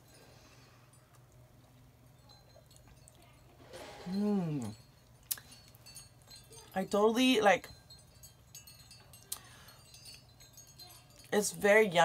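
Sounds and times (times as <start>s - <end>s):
woman humming approval: 4.1s - 4.8s.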